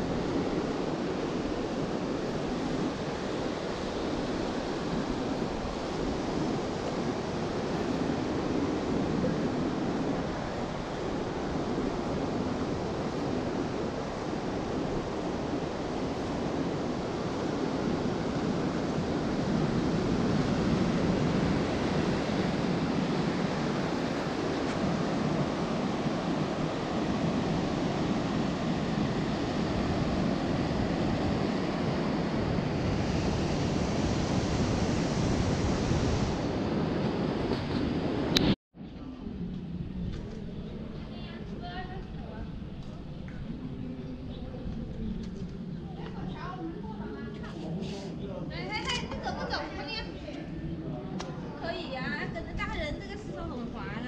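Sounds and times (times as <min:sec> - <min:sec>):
waves breaking on beach: 0:00.0 - 0:38.5
wind buffeting microphone: 0:00.0 - 0:54.0.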